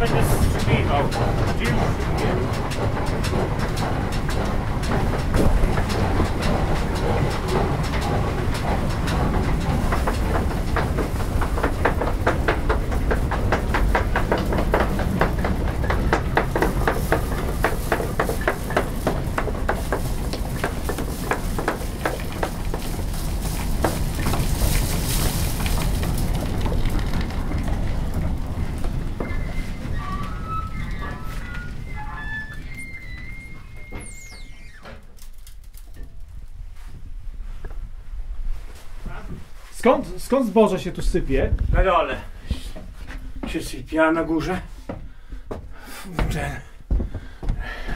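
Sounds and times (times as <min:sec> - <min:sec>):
grain mill machinery clattering: 0:00.0 - 0:36.1
machinery low rumble: 0:00.0 - 0:44.4.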